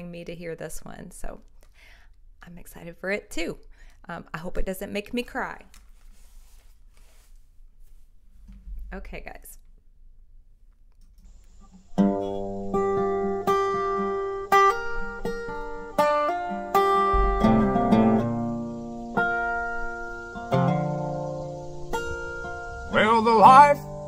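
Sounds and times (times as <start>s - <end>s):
resonator guitar plucked: 11.6s - 24.0s.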